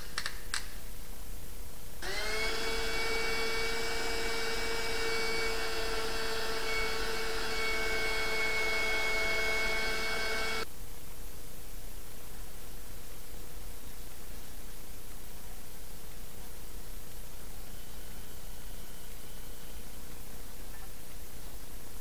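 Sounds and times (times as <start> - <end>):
cordless drill whining: 2.0 - 10.7.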